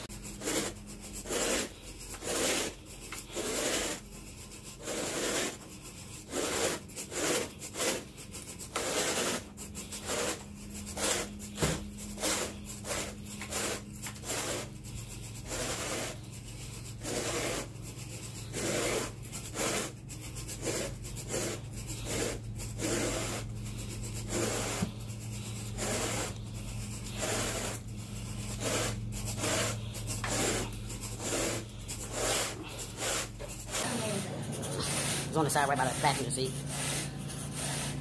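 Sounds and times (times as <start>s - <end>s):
carpet rake scraping carpet: 0.0s - 38.0s
steady low hum: 0.0s - 38.0s.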